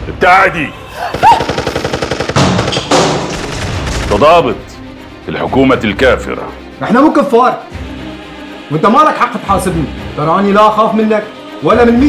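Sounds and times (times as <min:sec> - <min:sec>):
automatic gunfire: 0:01.3 - 0:03.8.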